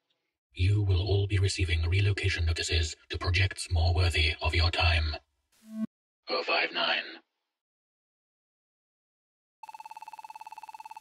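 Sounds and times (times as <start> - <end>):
pulsing electronic buzzing tone: 5.6 - 5.9.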